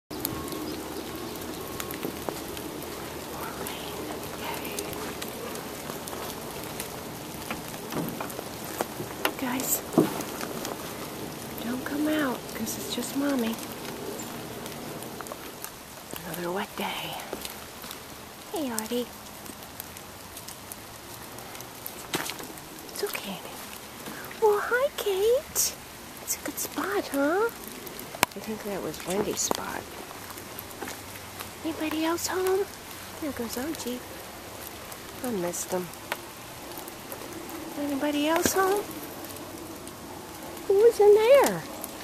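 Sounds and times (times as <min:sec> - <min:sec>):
rain on wet leaves: 0:00.0 - 0:42.0
sharp drip ticks: 0:00.1 - 0:42.0
single raindrop ticks: 0:27.1 - 0:28.4.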